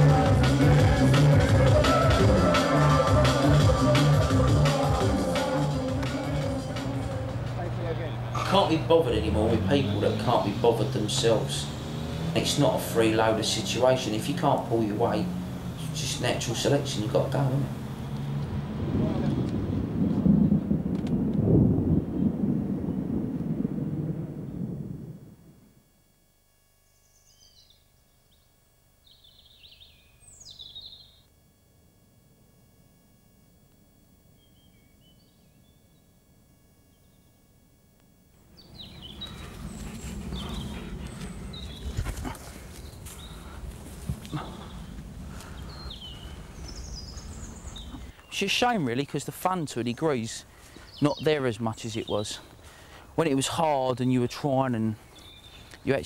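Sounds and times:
birds chirping: 0:00.0 - 0:18.6, 0:27.0 - 0:31.3, 0:34.3 - 0:36.3, 0:38.4 - 0:56.0
low outdoor rumble: 0:00.0 - 0:26.7, 0:37.6 - 0:56.0.

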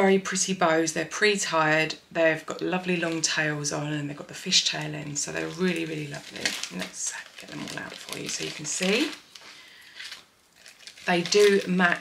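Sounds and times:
plastic bag crinkling: 0:02.5 - 0:12.0.

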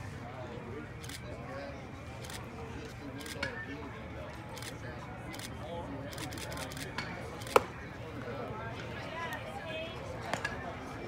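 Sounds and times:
faint distant voices: 0:00.0 - 0:11.0
outdoor background noise: 0:00.0 - 0:11.0.

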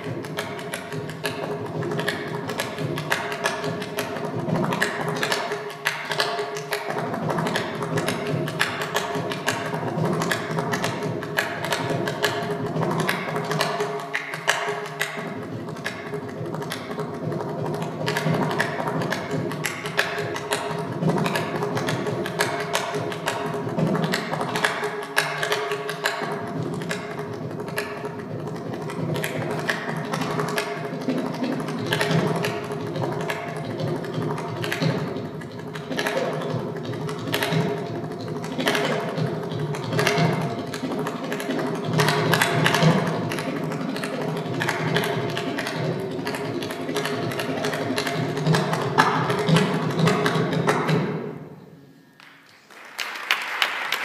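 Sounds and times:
hand drum fast strokes: 0:00.0 - 0:51.5.

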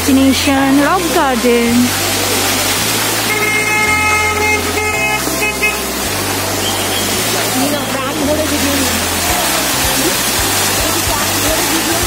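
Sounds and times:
low bass notes: 0:00.0 - 0:12.0
sustained chord tones: 0:00.0 - 0:12.0
waterfall rushing: 0:00.0 - 0:12.0.

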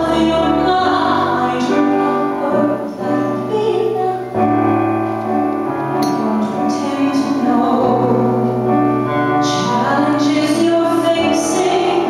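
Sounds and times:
woman singing a slow ballad: 0:00.0 - 0:04.8, 0:05.9 - 0:12.0
piano accompaniment: 0:00.0 - 0:12.0.

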